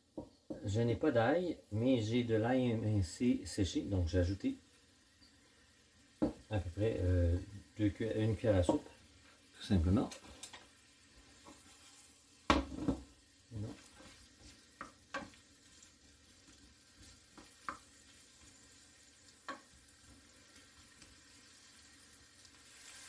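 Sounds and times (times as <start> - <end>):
onions sizzling in a pan: 0.0 - 23.0
wooden spoon knocking on pan: 0.1 - 0.7, 6.2 - 6.5, 8.6 - 8.9, 12.5 - 13.1, 14.5 - 15.4, 17.0 - 17.9, 19.4 - 19.7.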